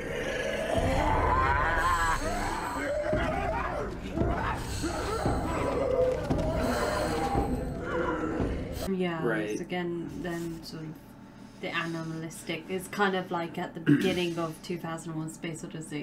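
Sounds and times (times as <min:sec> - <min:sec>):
deep low rumble: 0:00.0 - 0:08.9
film music: 0:00.0 - 0:08.9
men chanting and wailing: 0:00.0 - 0:08.9.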